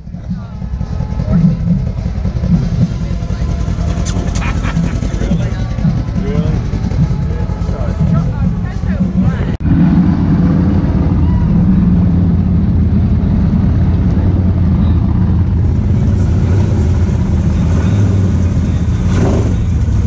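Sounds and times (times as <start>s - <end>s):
vehicle engine running steadily: 0.0s - 20.0s.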